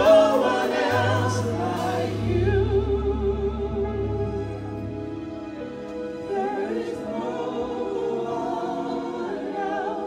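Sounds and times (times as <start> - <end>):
held accompaniment chords: 0.0 - 10.0.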